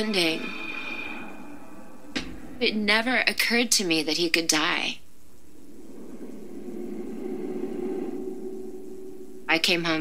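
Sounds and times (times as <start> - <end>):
low drone: 5.0 - 10.0
held tone: 5.4 - 10.0.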